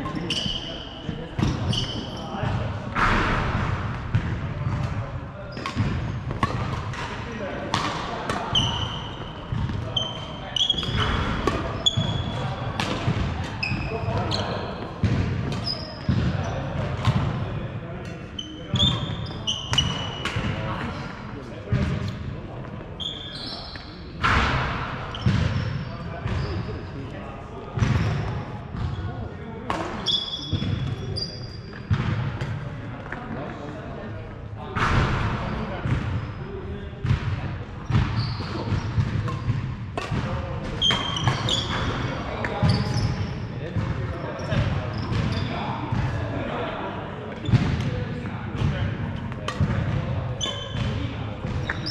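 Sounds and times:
shoes squeaking on floor: 0.0 - 2.6, 8.4 - 16.8, 18.3 - 21.1, 23.0 - 24.1, 30.0 - 31.8, 37.9 - 39.5, 40.7 - 43.5, 44.1 - 45.8, 50.3 - 51.9
racket striking shuttlecock: 39.3 - 40.3.

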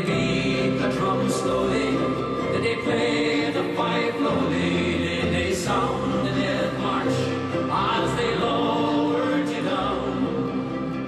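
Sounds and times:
recorded choir singing held notes: 0.0 - 11.0.

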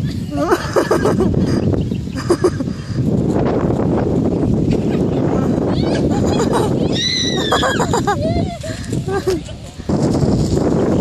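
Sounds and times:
wind rumbling on microphone: 0.0 - 11.0
child squealing and calling out: 5.6 - 8.6.

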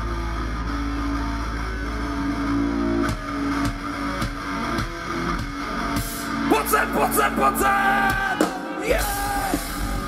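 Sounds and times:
electric guitars strumming riff: 0.0 - 10.0.

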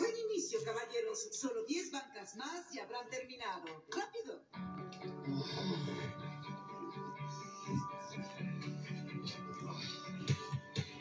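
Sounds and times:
film music with guitar: 4.5 - 11.0.

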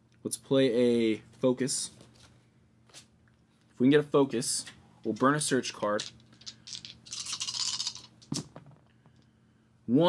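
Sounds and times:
plastic dice rattling in hands: 5.7 - 8.6
dice rolling: 5.8 - 8.9.

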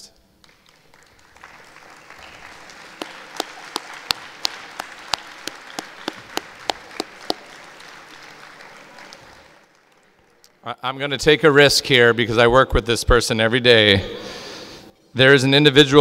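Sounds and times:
person clapping sharply: 0.4 - 10.5
audience applauding: 0.4 - 10.6.

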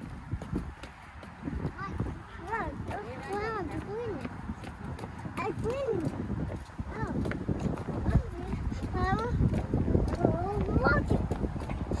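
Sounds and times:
footsteps on wooden boardwalk: 0.0 - 12.0
voices: 1.4 - 12.0.

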